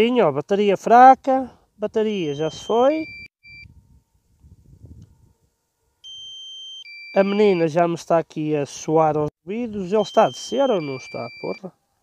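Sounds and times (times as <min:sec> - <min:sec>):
long high-pitched beep: 0:02.1 - 0:03.7, 0:06.0 - 0:07.8, 0:09.9 - 0:11.7
short warning beeps: 0:02.1 - 0:03.7, 0:06.0 - 0:07.8, 0:09.8 - 0:11.7.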